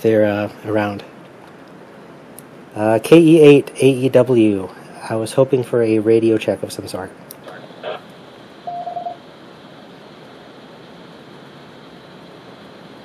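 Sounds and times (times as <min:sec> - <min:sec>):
radio hiss: 0:06.7 - 0:13.0
radio click: 0:07.3 - 0:08.2
radio courtesy beep: 0:08.7 - 0:09.2.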